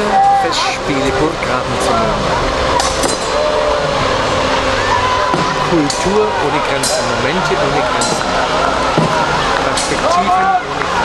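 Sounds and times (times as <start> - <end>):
voices talking over each other: 0.0 - 11.0
sword striking shield: 2.8 - 3.4.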